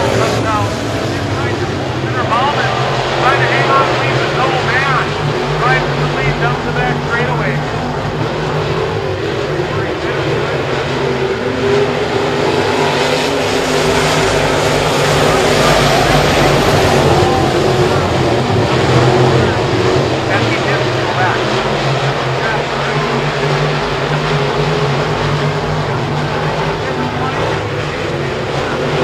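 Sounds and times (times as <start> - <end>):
race car engines droning: 0.0 - 29.0.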